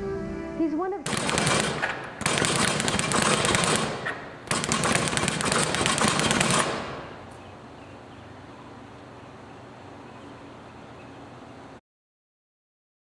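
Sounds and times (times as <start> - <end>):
speed bag punched rapidly: 1.1 - 7.0.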